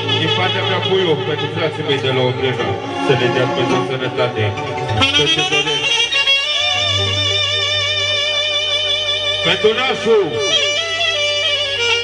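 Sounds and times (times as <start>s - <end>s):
live band music: 0.0s - 12.0s
sliding bending notes: 0.0s - 12.0s.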